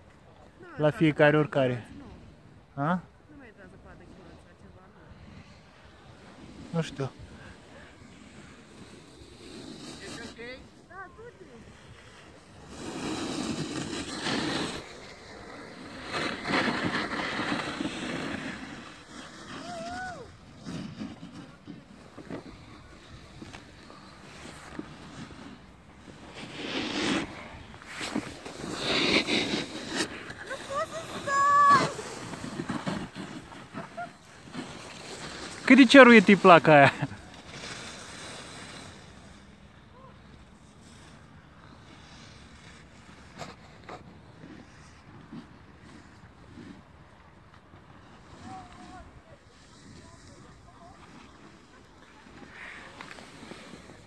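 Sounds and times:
snowboard scraping over snow: 0:00.6 - 0:54.0.

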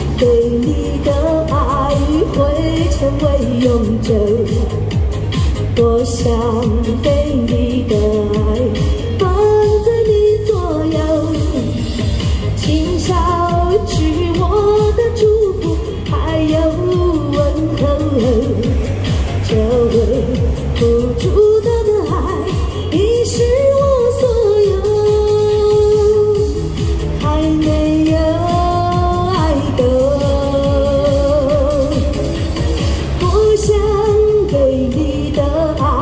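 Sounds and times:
backing track with bass beat: 0:00.0 - 0:36.0
woman singing pop ballad: 0:00.0 - 0:36.0.

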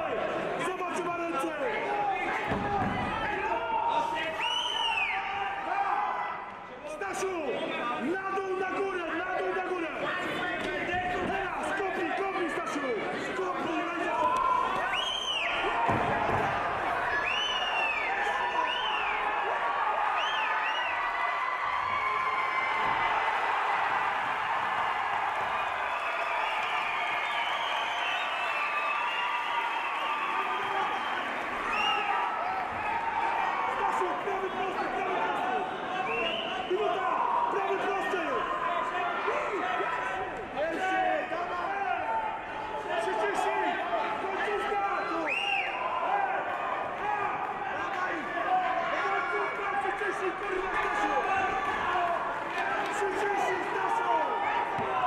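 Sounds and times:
crowd talking and shouting: 0:00.0 - 0:55.0.

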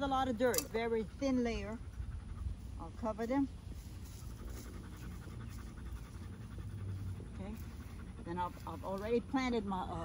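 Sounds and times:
low steady rumble: 0:00.0 - 0:10.0
rapid rhythmic panting: 0:00.0 - 0:10.0.

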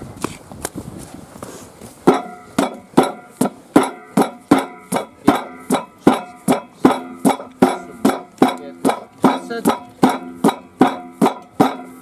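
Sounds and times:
hammer striking steel plate: 0:02.0 - 0:12.0.

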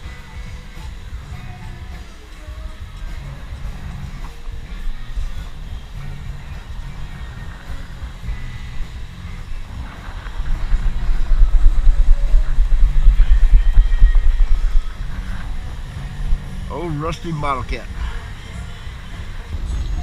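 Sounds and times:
man speaking: 0:16.7 - 0:17.9.

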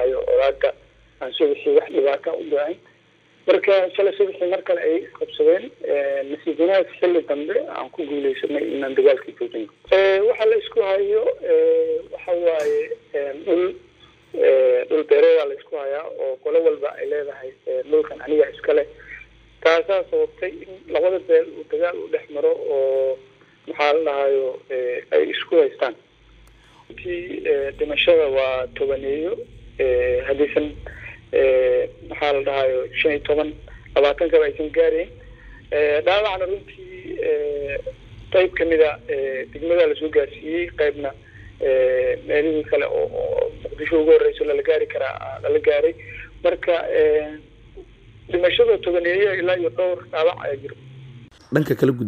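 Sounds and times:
person talking over phone: 0:03.5 - 0:13.8, 0:51.4 - 0:52.0
person speaking: 0:03.6 - 0:13.8, 0:51.4 - 0:52.0.

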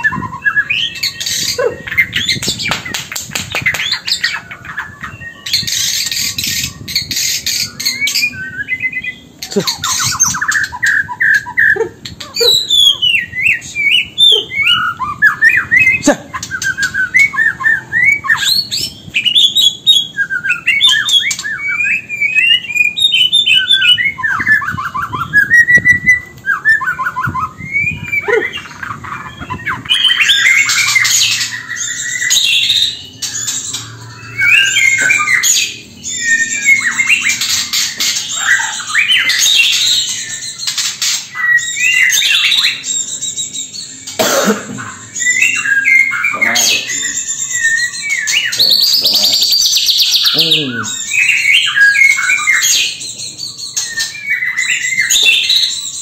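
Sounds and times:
bird singing whistles and trills: 0:00.0 - 0:56.0.

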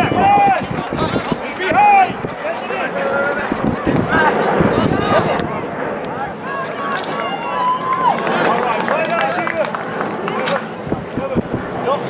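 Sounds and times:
loud shouted calls: 0:00.0 - 0:10.8.

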